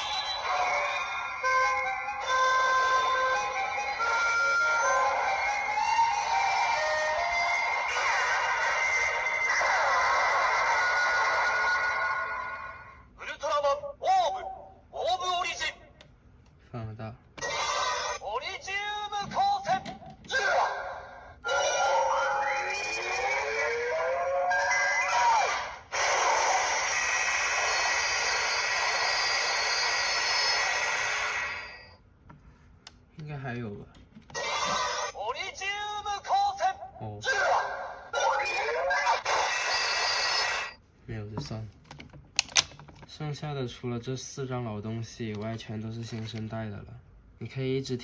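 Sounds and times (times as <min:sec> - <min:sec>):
toy electronic music: 0:00.0 - 0:12.7, 0:21.4 - 0:25.1, 0:25.9 - 0:32.0, 0:38.2 - 0:40.8
toy voice calls: 0:00.0 - 0:15.8, 0:17.4 - 0:31.9, 0:34.3 - 0:40.8.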